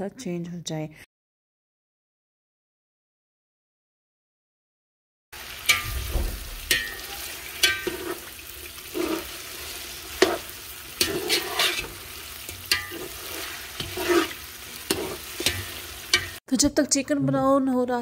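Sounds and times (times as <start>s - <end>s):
food sizzling in hot oil: 5.4s - 16.4s
spoon scraping and knocking pot: 5.7s - 16.4s.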